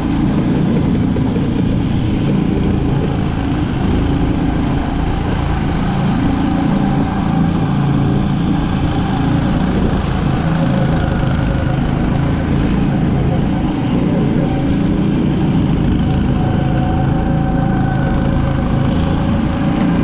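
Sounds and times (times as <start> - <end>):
go-kart engine running: 0.0 - 20.0
kart moving along track: 0.0 - 20.0.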